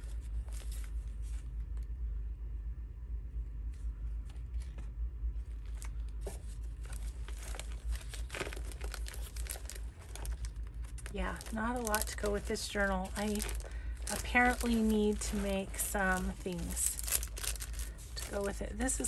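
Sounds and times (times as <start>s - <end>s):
paper cards rustling: 0.0s - 1.9s, 4.2s - 19.0s
steady low hum: 0.0s - 19.0s
crisp paper ticks: 5.6s - 19.0s.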